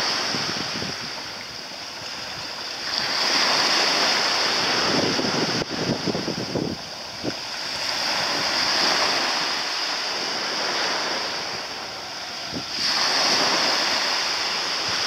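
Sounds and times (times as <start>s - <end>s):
small waves washing: 0.0s - 15.0s
wind buffeting microphone: 0.0s - 15.0s.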